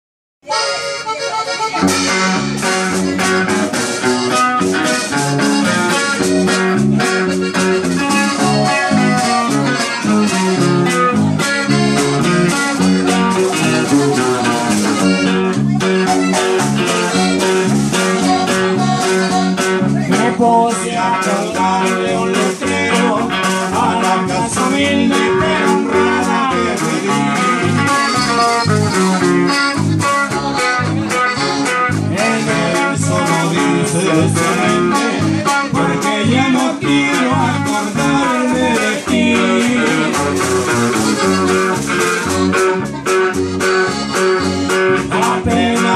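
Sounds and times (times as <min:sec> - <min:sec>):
accordion melody: 0:00.4 - 0:45.9
strummed guitar: 0:00.4 - 0:45.9
electric bass: 0:00.6 - 0:45.9.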